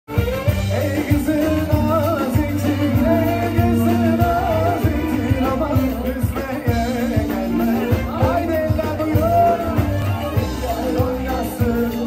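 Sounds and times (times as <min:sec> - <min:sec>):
ornamented lead melody: 0:00.1 - 0:12.0.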